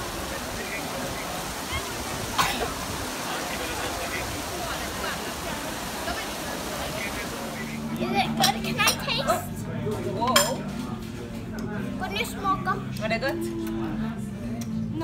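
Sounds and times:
fountain water running: 0.0 - 9.6
crowd murmur: 0.0 - 15.0
glasses and dishes clinking: 8.3 - 9.1, 10.2 - 10.8.

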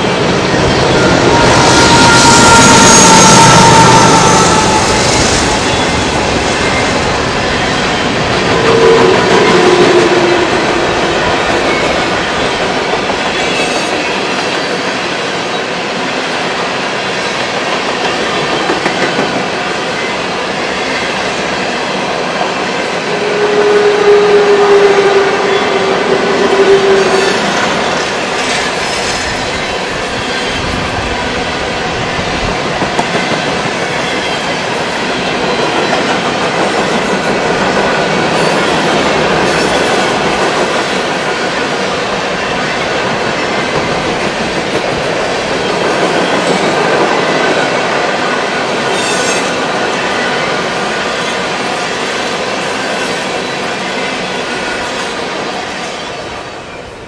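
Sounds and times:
train wheels rumbling on rails: 0.0 - 57.0
high wheel squeal: 0.5 - 9.8, 23.2 - 32.5.

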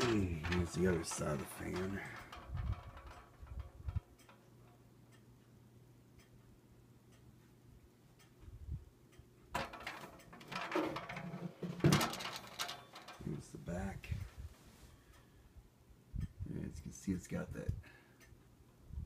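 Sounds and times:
faint ticking: 0.0 - 9.5.

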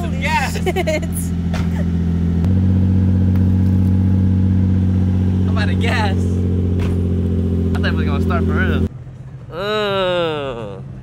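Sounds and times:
car engine idling: 0.0 - 9.6.

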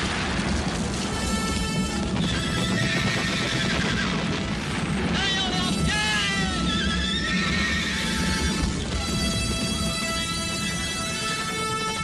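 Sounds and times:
film music: 0.0 - 12.0
horses galloping: 0.0 - 12.0
horses whinnying: 2.2 - 4.3, 6.7 - 8.5.

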